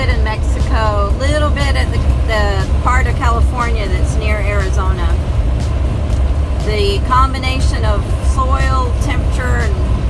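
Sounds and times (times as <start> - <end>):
person talking: 0.0 - 5.2, 6.7 - 9.8
vehicle rumble inside cab: 0.0 - 10.0.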